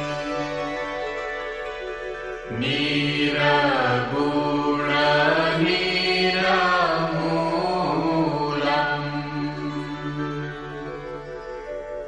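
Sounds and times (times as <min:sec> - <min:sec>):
steady drone: 0:00.0 - 0:12.0
devotional vocal chanting: 0:02.5 - 0:11.1.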